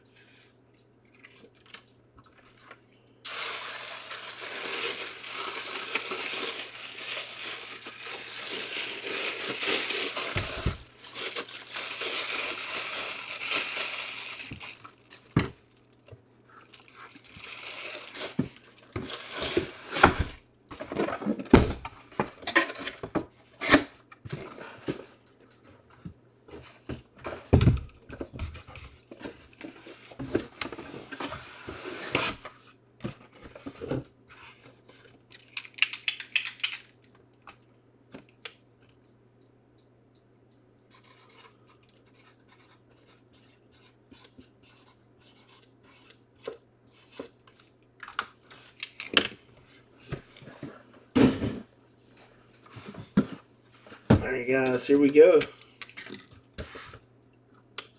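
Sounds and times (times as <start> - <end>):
boxes and packaging handled: 0.1 - 15.6, 16.6 - 36.7, 52.5 - 55.5.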